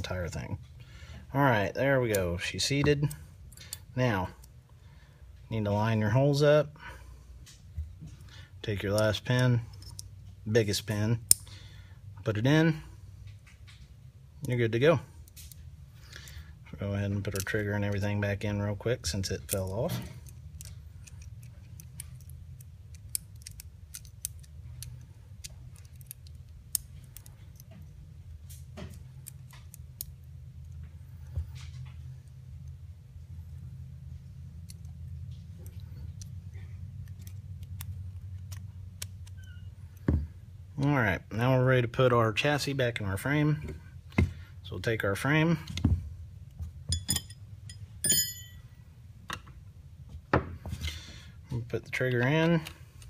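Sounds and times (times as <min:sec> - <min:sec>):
low steady hum: 0:00.0 - 0:53.0
small metal parts clicking: 0:08.9 - 0:10.2, 0:17.1 - 0:18.0, 0:19.2 - 0:30.8, 0:37.0 - 0:40.1
sharp metallic clink: 0:46.9 - 0:48.7.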